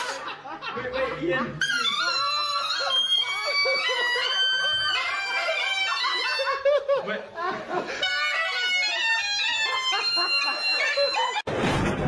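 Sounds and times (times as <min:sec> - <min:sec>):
bagpipe chanter notes: 0:01.6 - 0:06.6, 0:08.0 - 0:11.4
bagpipe drones: 0:07.9 - 0:11.4.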